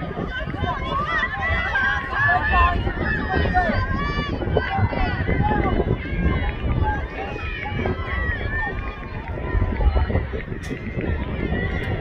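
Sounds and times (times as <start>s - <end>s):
spectators calling out and talking: 0.0s - 12.0s.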